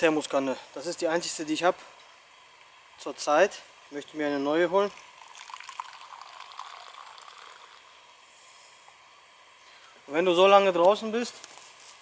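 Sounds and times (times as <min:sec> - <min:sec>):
liquid trickling into a cup: 0:04.7 - 0:08.8.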